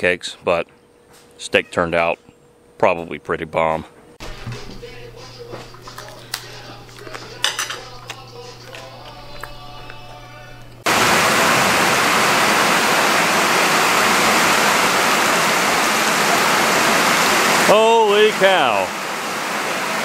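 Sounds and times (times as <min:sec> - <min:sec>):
heavy rain on lake surface: 0:10.9 - 0:20.0.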